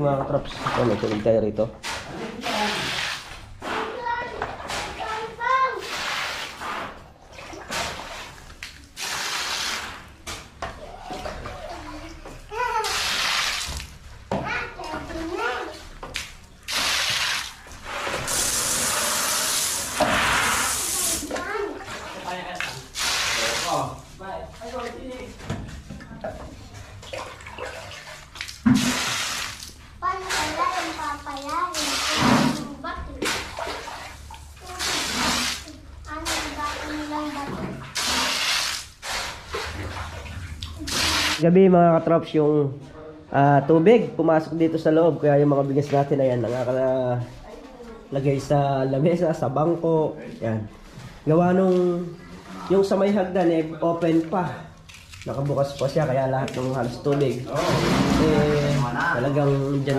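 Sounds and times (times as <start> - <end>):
hose water splashing on gravel: 5.0 - 7.0, 7.7 - 10.2, 12.8 - 14.0, 16.7 - 21.6, 22.6 - 24.0, 28.3 - 32.6, 33.3 - 41.4.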